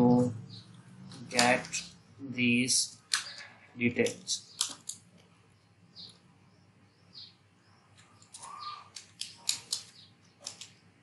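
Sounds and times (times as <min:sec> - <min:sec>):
keyboard keys clicking: 0:04.0 - 0:05.0, 0:08.0 - 0:10.7
faint high bird chirps: 0:05.5 - 0:09.0.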